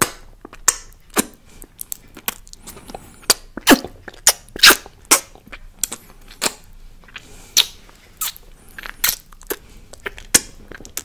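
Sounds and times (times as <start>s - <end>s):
lips smacking: 0.0s - 11.0s.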